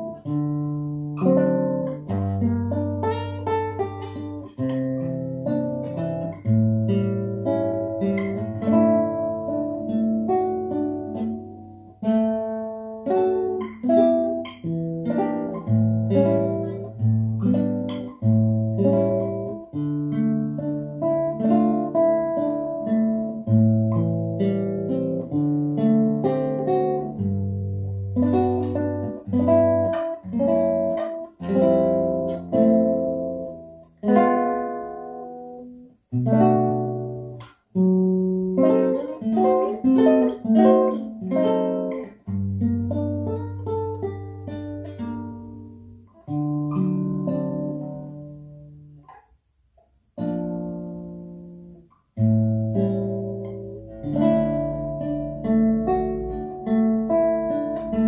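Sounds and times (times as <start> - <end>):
classical guitar fingerstyle: 0.0 - 58.0.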